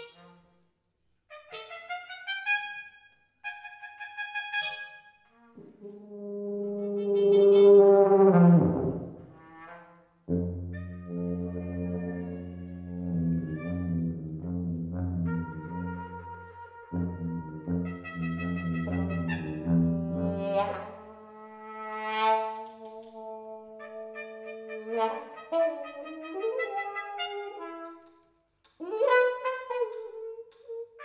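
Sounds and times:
tuba note sliding downward: 5.6 - 9.6, 10.3 - 21.3.

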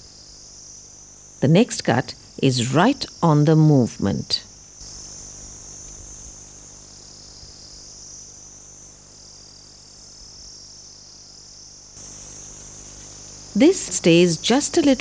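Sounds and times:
insects chirring: 0.0 - 15.0.

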